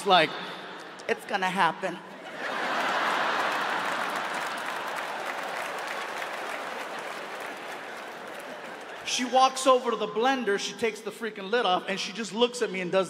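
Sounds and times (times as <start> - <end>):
audience applauding: 2.4 - 9.4.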